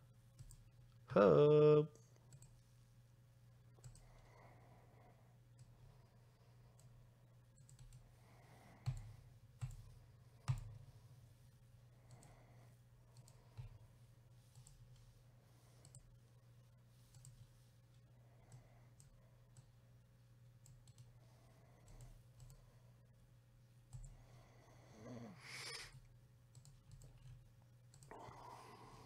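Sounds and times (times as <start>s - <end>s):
computer mouse clicks: 0.4s - 0.7s, 2.2s - 2.6s, 3.8s - 4.2s, 7.6s - 8.1s, 8.8s - 10.9s, 12.0s - 12.3s, 13.1s - 13.9s, 14.5s - 15.1s, 15.8s - 16.1s, 17.1s - 19.8s, 20.6s - 21.1s, 21.8s - 22.6s, 26.5s - 28.2s.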